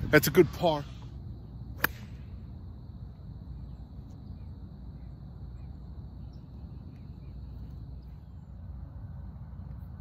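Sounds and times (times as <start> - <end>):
golf club striking ball: 1.8 - 2.2.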